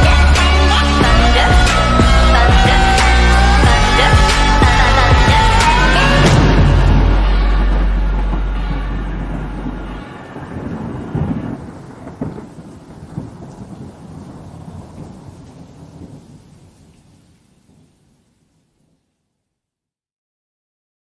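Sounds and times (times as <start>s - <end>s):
thunder rumbling and cracking: 0.0s - 17.9s
rain: 0.0s - 19.7s
low bass note: 2.0s - 10.2s.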